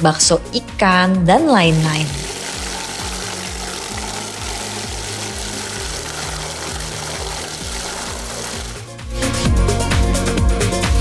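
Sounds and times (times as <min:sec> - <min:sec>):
meat mixer motor running: 0:01.7 - 0:08.9
blades churning meat paste: 0:01.8 - 0:08.9.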